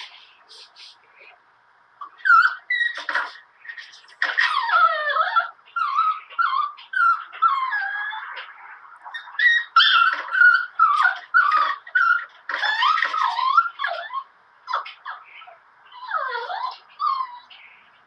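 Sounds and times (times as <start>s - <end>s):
dog whining: 2.0s - 18.0s.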